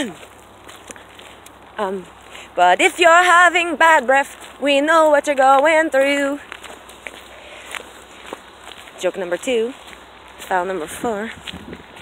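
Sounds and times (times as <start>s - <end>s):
soft footsteps: 0.0s - 12.0s
wind hiss on microphone: 10.9s - 12.0s.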